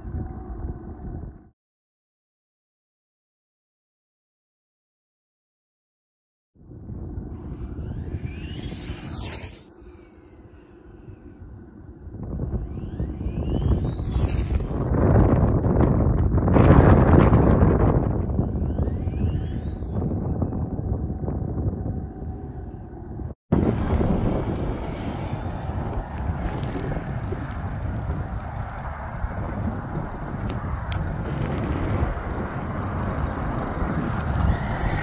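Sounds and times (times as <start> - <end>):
wind buffeting microphone: 0.0 - 1.5, 6.6 - 35.0.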